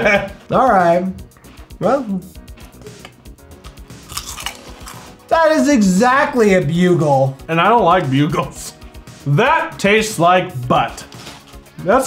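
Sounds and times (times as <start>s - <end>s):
crunching and chewing chips: 3.6s - 5.2s.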